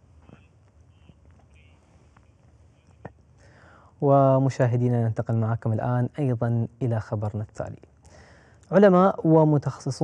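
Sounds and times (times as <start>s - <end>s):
soft breath: 3.4s - 4.0s, 8.0s - 8.7s.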